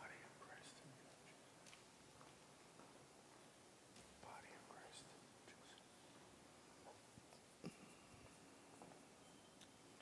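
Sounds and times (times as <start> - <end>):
faint whisper: 0.0 - 1.4, 4.2 - 6.2.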